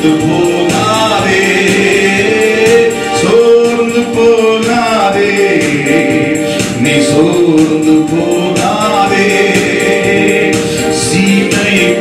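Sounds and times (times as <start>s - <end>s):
man singing into a microphone: 0.0s - 12.0s
steady percussion beat: 0.0s - 12.0s.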